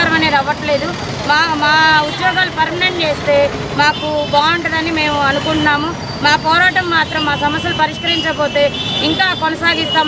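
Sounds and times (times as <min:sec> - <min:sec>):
road traffic: 0:00.0 - 0:10.0
woman speaking into microphone: 0:00.0 - 0:10.0.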